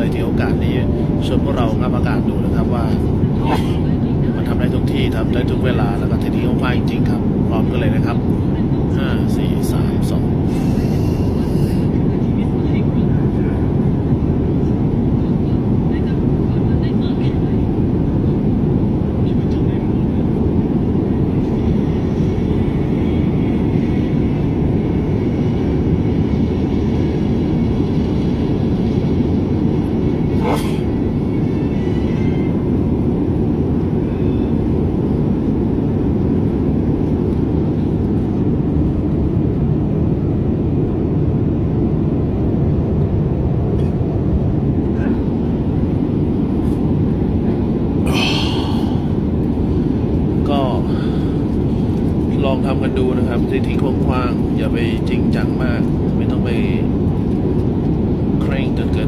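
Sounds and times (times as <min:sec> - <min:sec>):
steady low rumbling: 0:00.0 - 0:59.0.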